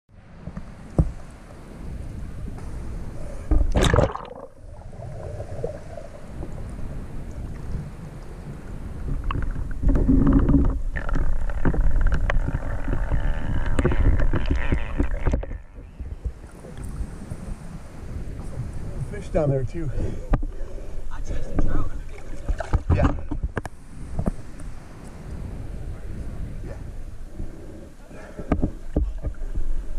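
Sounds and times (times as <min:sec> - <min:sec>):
muffled underwater rumble: 0:00.3 - 0:19.2
water sloshing and splashing: 0:02.6 - 0:17.1, 0:20.2 - 0:24.4.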